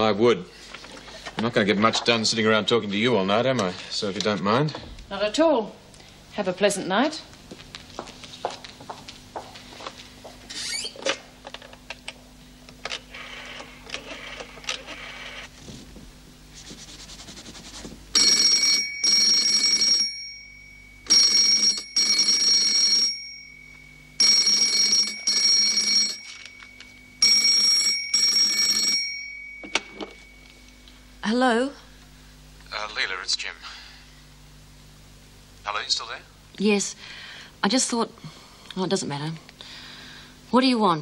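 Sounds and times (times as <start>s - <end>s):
telephone double ring: 18.2s - 30.6s.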